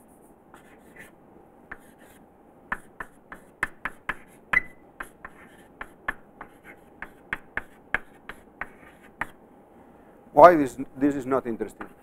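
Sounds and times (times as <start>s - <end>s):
chalk writing on blackboard: 0.0s - 1.1s, 1.7s - 9.4s, 11.7s - 12.0s.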